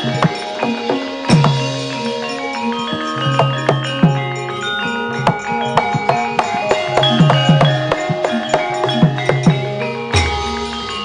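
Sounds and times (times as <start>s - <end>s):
metallophones ringing: 0.0s - 11.0s.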